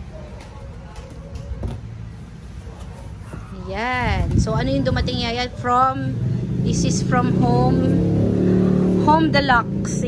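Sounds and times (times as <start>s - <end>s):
steady low rumble: 3.7s - 9.7s.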